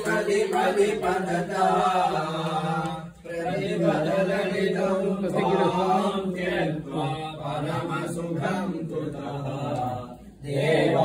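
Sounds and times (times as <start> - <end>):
voices chanting: 0.0 - 11.0.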